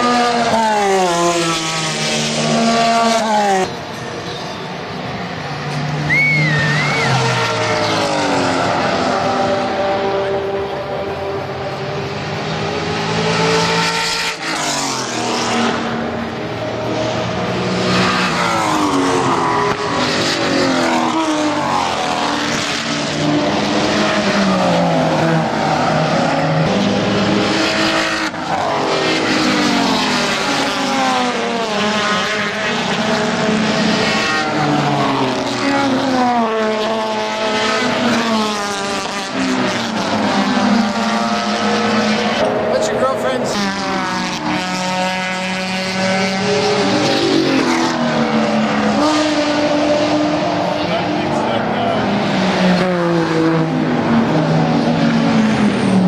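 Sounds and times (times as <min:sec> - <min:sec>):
race cars passing: 0:00.0 - 0:56.0.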